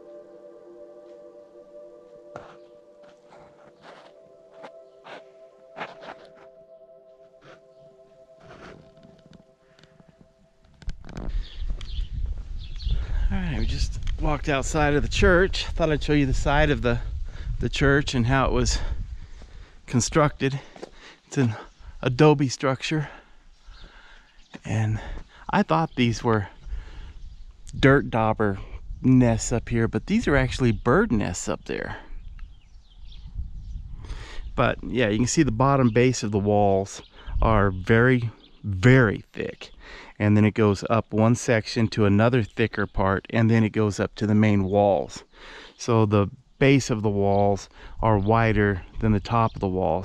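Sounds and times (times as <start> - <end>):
footsteps: 2.0 - 6.6, 7.2 - 12.6
wind rumbling on microphone: 10.8 - 20.3, 26.3 - 31.4, 32.0 - 36.0, 37.2 - 38.0
faint bird chirps: 37.0 - 39.9.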